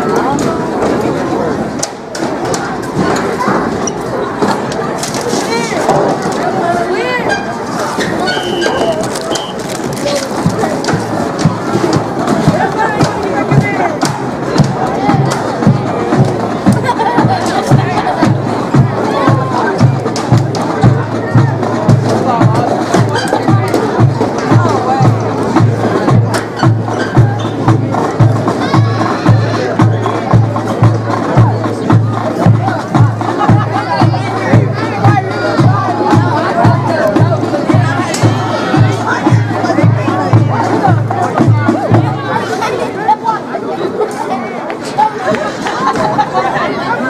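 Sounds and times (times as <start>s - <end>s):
crowd chatter: 0.0s - 47.0s
bass drum beat: 10.4s - 42.4s.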